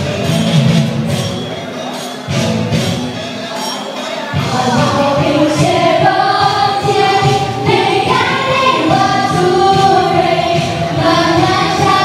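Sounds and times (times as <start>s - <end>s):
musical accompaniment: 0.0s - 12.0s
women and children singing: 4.4s - 12.0s.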